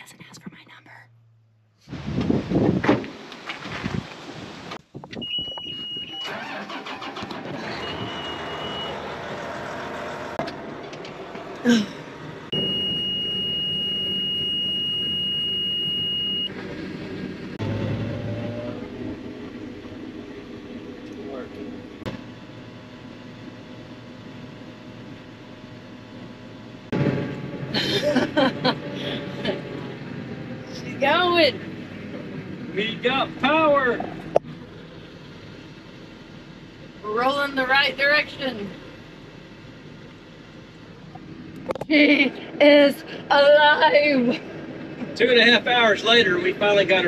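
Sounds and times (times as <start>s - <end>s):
low machine hum: 10.5s - 47.0s
high-pitched electronic warning tone: 12.5s - 16.5s.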